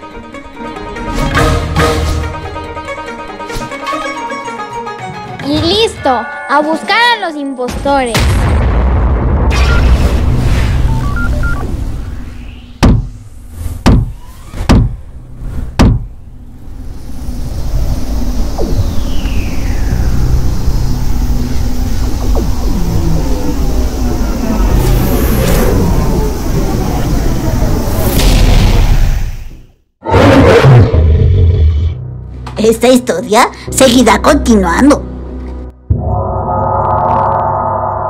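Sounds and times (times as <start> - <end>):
falling whoosh: 17.6 - 29.5
sharp booming hits: 27.9 - 29.6.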